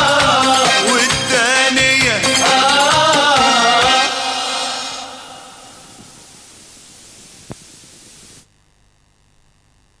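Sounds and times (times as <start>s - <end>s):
recording hiss: 2.4s - 8.7s
faint hum: 4.1s - 10.0s.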